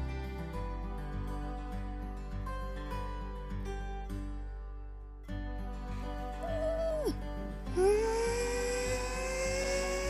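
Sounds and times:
quiet background music: 0.0 - 10.0
child singing long rising note: 7.8 - 10.0.

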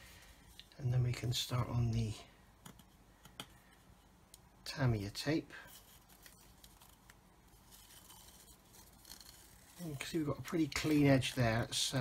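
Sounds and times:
masking tape peeling off plastic: 5.9 - 12.0.

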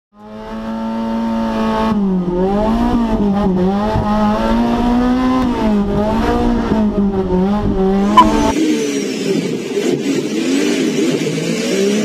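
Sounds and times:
racing car engine revving: 0.2 - 12.0.

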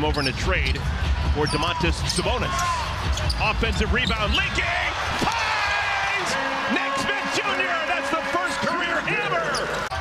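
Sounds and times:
basketball shoes squeaking on court: 0.0 - 0.8, 1.4 - 4.4
arena crowd noise: 0.0 - 10.0.

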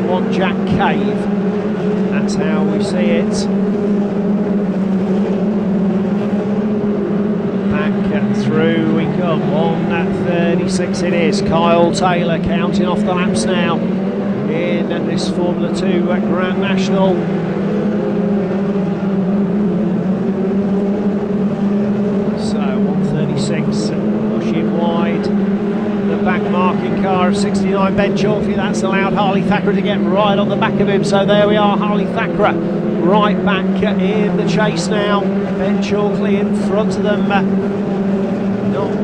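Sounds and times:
race car engines droning: 0.0 - 39.0.

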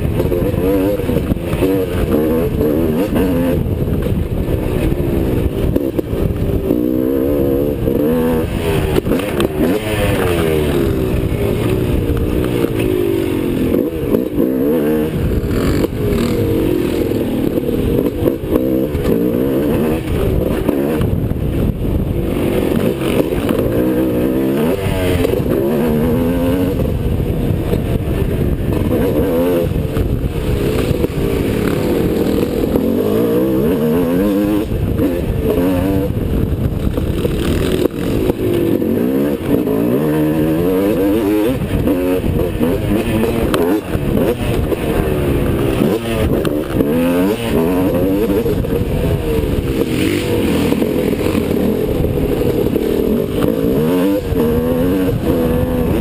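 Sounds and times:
dirt bike engine racing: 0.0 - 56.0.

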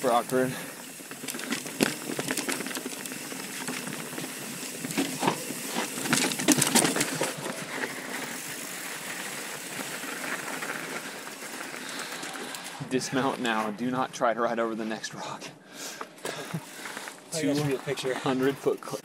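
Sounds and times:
bike rattling and clicking: 0.0 - 13.6
bike tyre rolling noise: 0.0 - 15.0, 15.8 - 19.0.

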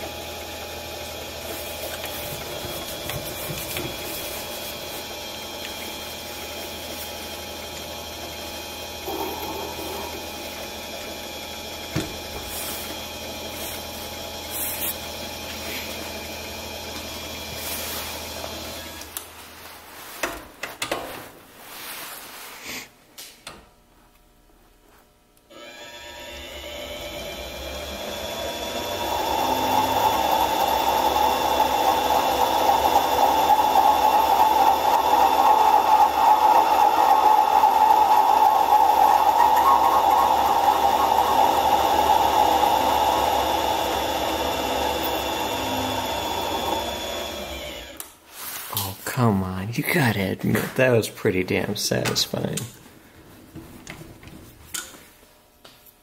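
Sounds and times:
lathe cutting noise: 0.0 - 19.1, 25.5 - 48.0
lathe motor whine: 0.0 - 19.1, 25.5 - 48.1.

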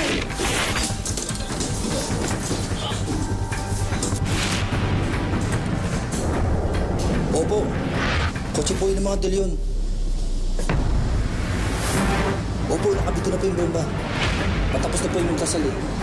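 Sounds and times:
dramatic background score: 0.0 - 16.0.

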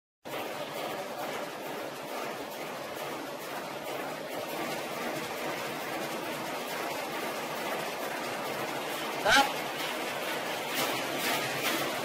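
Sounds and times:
machinery and water running: 0.2 - 12.0.

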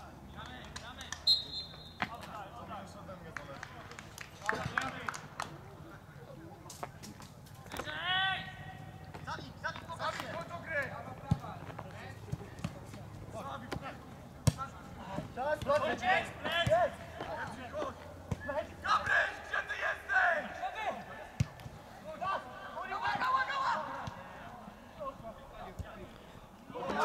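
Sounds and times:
footballers shouting: 14.6 - 27.0.

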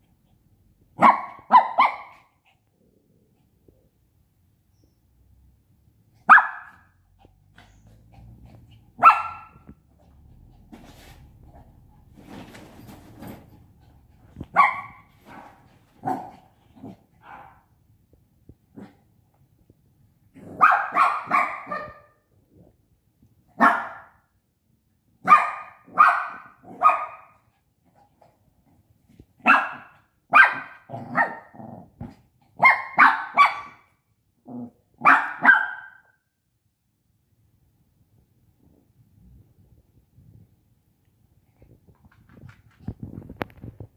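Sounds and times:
puppy barking: 1.0 - 2.4, 6.2 - 7.0, 9.0 - 9.8, 14.5 - 16.5, 17.2 - 17.7, 20.5 - 22.2, 23.6 - 24.2, 25.2 - 27.5, 29.4 - 31.6, 32.6 - 33.9, 35.0 - 36.2.

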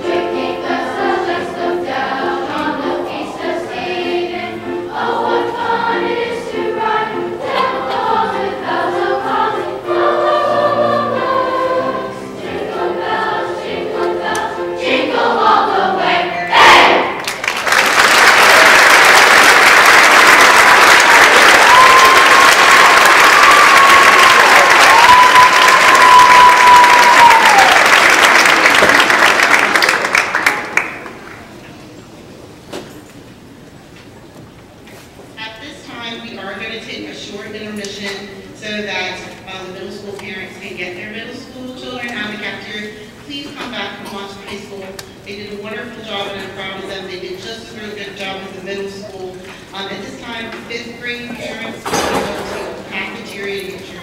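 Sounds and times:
chorus singing: 0.0 - 17.4
audience applause: 17.2 - 31.5
high-pitched call from crowd: 21.3 - 28.0.

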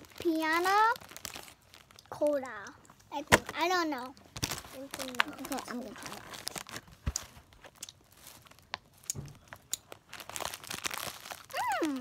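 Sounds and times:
candy packet crinkling: 0.0 - 12.0
child humming: 11.5 - 12.0.

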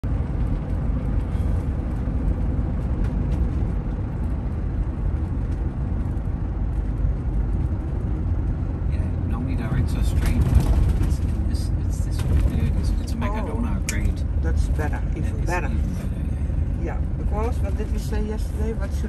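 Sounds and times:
vehicle engine and tyre rumble: 0.0 - 19.0
person speaking: 11.2 - 19.0.

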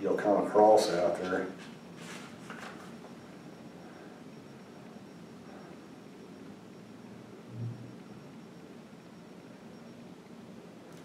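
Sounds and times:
short low hum: 1.7 - 10.0.

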